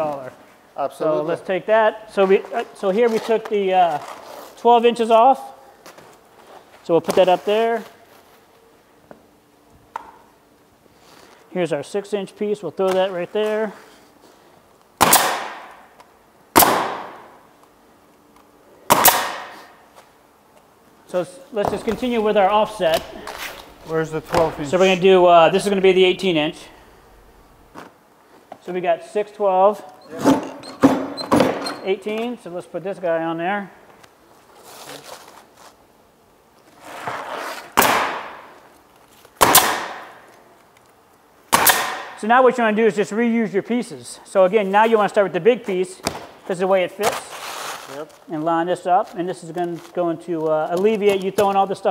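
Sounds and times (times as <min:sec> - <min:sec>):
pneumatic nailer firing: 0:15.0 - 0:15.8, 0:16.6 - 0:17.3, 0:18.9 - 0:19.7, 0:37.8 - 0:38.4, 0:39.4 - 0:40.2, 0:41.5 - 0:42.2.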